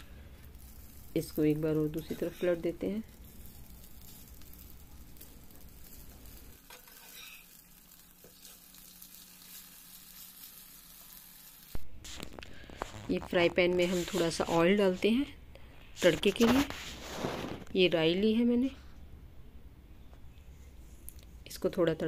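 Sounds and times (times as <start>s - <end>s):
metal spatula turning pancakes: 0.0s - 14.9s
pancakes sizzling in a frying pan: 0.0s - 15.0s.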